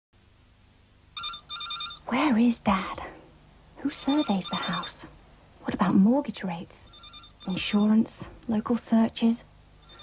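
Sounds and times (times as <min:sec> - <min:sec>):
electronic telephone ringing: 0:01.2 - 0:02.1, 0:03.9 - 0:05.1, 0:06.8 - 0:08.1, 0:09.8 - 0:10.0.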